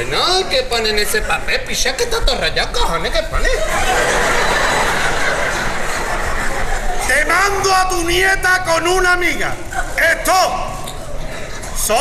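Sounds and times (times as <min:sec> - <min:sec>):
audience laughing: 0:03.4 - 0:07.6.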